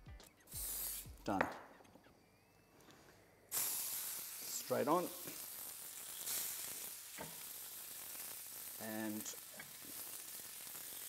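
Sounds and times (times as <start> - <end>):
chicken sizzling on a hot grill: 3.5 - 11.0.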